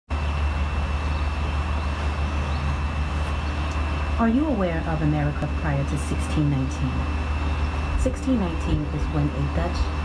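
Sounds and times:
low machine hum with hiss: 0:00.1 - 0:10.0.

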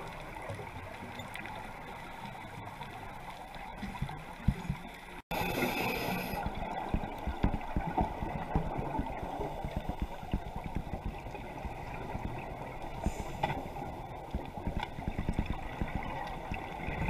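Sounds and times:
underwater water noise: 0:00.0 - 0:17.0.

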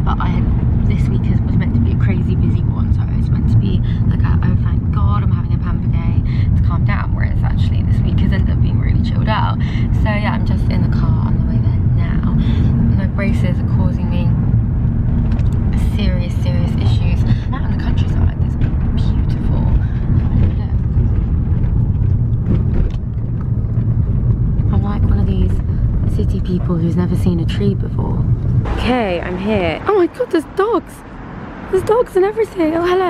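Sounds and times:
car road and engine rumble: 0:00.0 - 0:33.0.

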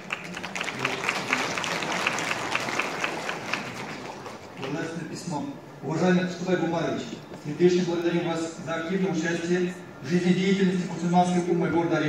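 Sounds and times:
audience applauding: 0:00.0 - 0:04.8.

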